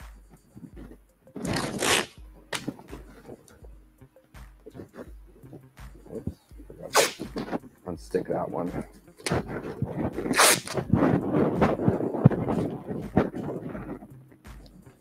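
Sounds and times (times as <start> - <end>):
crackling and rustling of tape: 0.3 - 3.7, 4.6 - 15.0
tape ripping off roll: 1.4 - 2.8, 6.9 - 7.6, 10.3 - 10.9.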